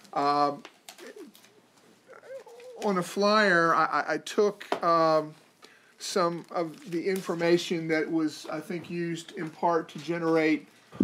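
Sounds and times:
man talking: 0.1 - 1.3, 2.1 - 5.4, 6.0 - 10.7.

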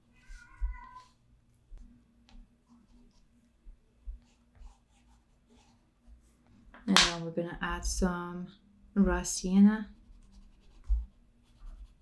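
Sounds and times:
cat meowing: 0.1 - 1.1
pastel rubbing on paper: 10.0 - 12.0.

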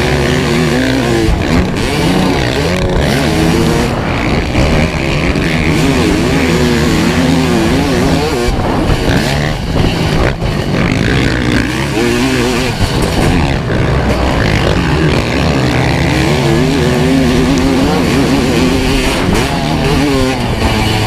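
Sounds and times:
two-stroke motorcycle engine racing: 0.0 - 21.0.

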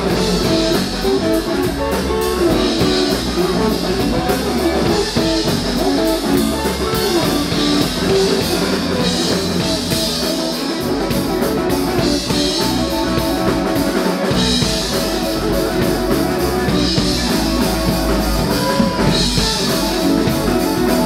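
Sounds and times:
bass guitar: 0.0 - 21.0
drum kit beat: 0.0 - 21.0
electric guitars: 0.0 - 21.0.

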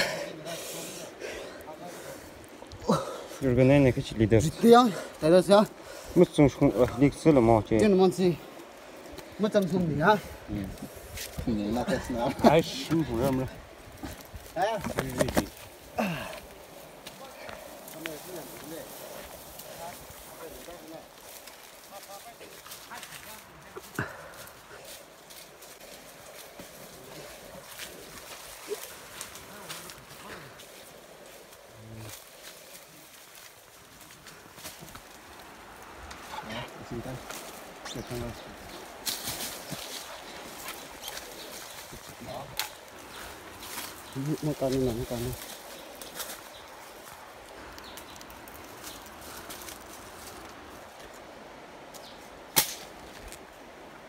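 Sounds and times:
faint outdoor background: 0.0 - 54.0
footsteps crunching dry leaves: 15.4 - 51.4.

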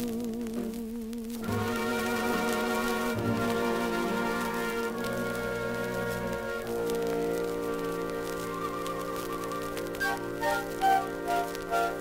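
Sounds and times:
record crackle: 0.0 - 12.0
swing orchestra playing chords: 1.4 - 12.0.

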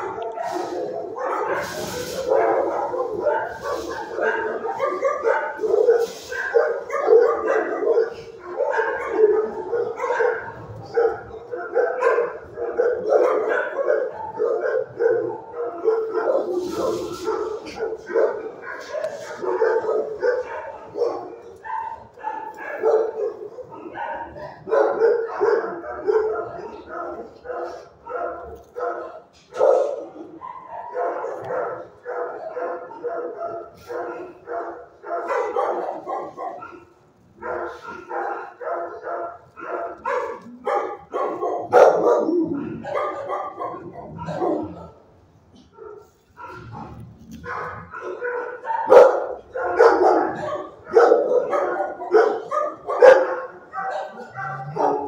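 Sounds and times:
dogs barking: 0.0 - 55.0.

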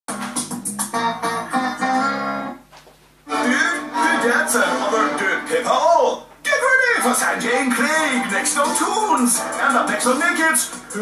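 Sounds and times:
guitar-led music from television: 0.1 - 11.0
voice over music: 3.3 - 11.0.

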